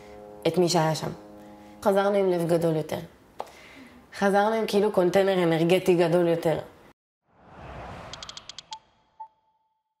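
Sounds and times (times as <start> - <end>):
whoosh: 7.3 - 9.2.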